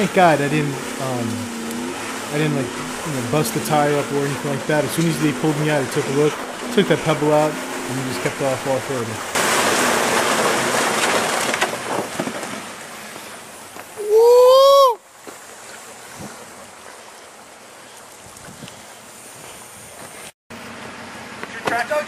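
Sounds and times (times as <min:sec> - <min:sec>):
tyres spinning in muddy water: 0:00.0 - 0:14.1
person yelling: 0:14.0 - 0:15.0.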